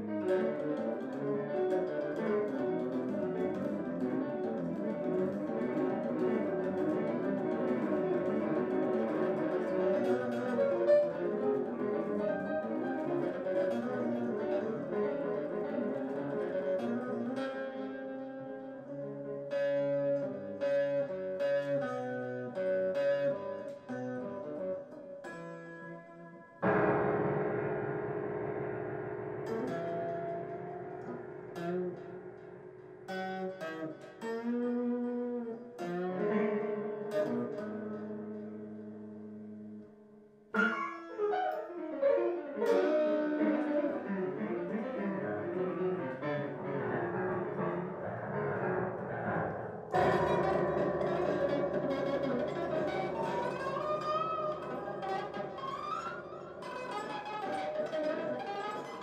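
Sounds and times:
piano: 0.0s - 59.0s
electric guitar: 40.6s - 59.0s.

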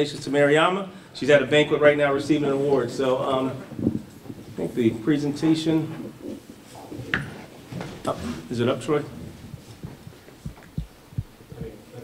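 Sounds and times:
soft low thumps: 3.7s - 4.6s, 8.9s - 12.0s.

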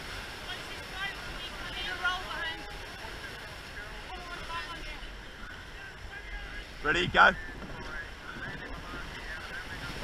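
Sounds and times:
water washing around boat hull: 0.0s - 10.0s
wind buffeting microphone: 6.2s - 10.0s.

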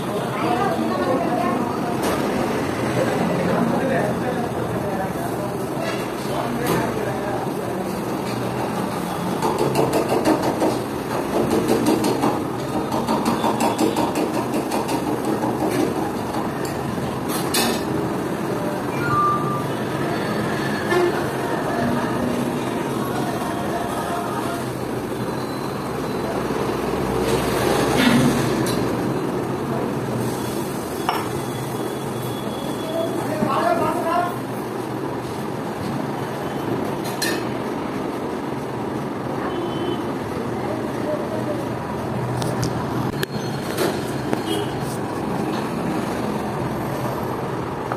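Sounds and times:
restaurant background din: 0.0s - 35.0s
sharp clicks and knocks: 9.4s - 16.5s.

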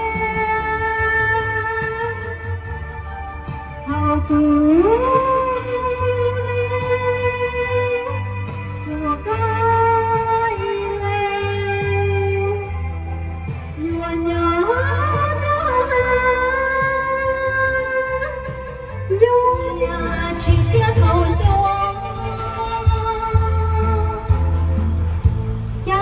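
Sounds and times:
woman singing through loudspeakers: 0.0s - 25.0s, 25.8s - 26.0s
backing music with bass line: 0.0s - 26.0s.

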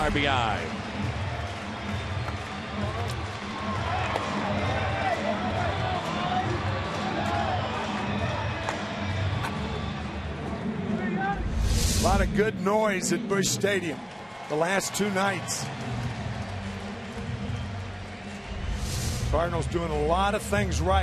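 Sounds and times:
crowd cheering and chattering: 0.0s - 21.0s.

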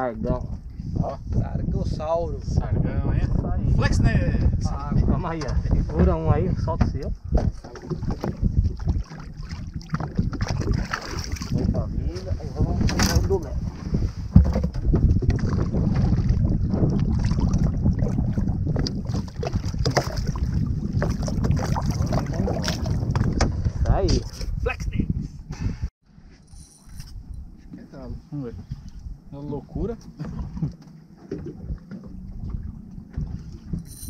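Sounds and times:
wind rumble on microphone: 0.0s - 34.0s
water lapping against boat: 5.6s - 24.6s, 28.6s - 34.0s.

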